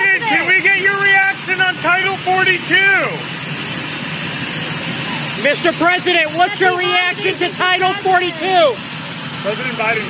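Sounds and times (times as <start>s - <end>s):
helicopter turbine engines idling: 0.0s - 10.0s.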